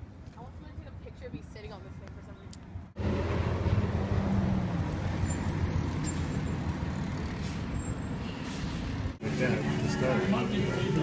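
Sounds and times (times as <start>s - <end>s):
vehicles passing: 0.0s - 11.0s.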